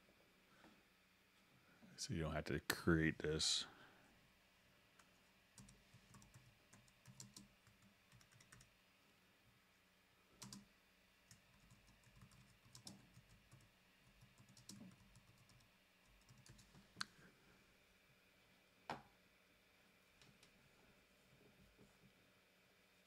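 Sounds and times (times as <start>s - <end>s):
typing on computer keyboard: 5.6s - 8.7s, 10.4s - 10.7s, 11.3s - 16.8s.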